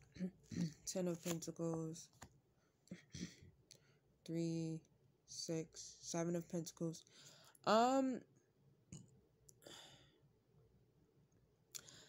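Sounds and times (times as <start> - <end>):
person saying um: 0.2 - 2.0
soft card rustle: 0.9 - 2.4.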